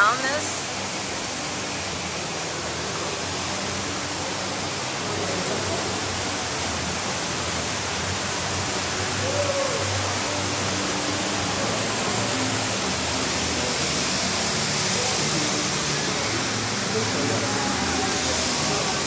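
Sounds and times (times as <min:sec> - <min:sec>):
waterfall rushing into pool: 0:00.0 - 0:19.0.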